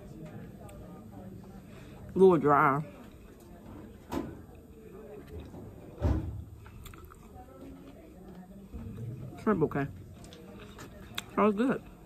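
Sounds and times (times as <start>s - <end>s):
person chewing food: 6.6s - 7.4s, 10.2s - 12.0s.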